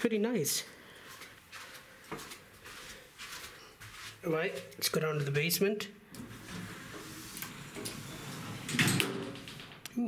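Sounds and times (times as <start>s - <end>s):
elevator doors sliding closed: 6.2s - 9.9s
doors knocking shut: 8.6s - 9.9s.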